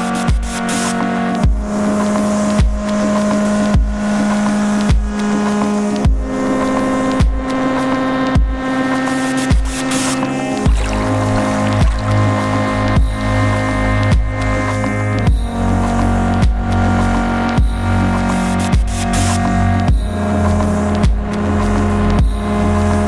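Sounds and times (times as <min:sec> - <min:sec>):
sustained synth chords: 0:06.4 - 0:16.4
deep bass line: 0:09.4 - 0:23.0
deep beat hits: 0:09.5 - 0:13.3.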